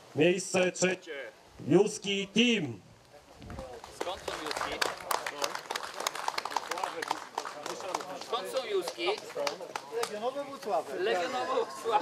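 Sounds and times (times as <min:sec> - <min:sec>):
crowd clapping: 0:03.5 - 0:10.4
people talking: 0:06.7 - 0:12.0.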